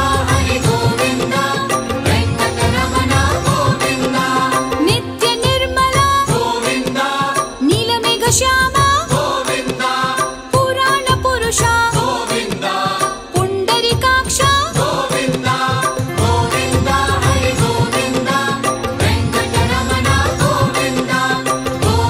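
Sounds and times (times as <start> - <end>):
chanted vocal line: 0.0 - 22.0.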